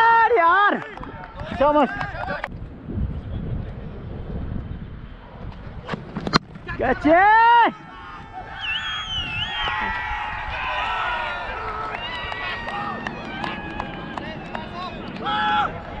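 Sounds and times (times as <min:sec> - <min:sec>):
players shouting and cheering: 0:00.0 - 0:02.5, 0:06.6 - 0:16.0
loud drawn-out shout: 0:07.1 - 0:16.0.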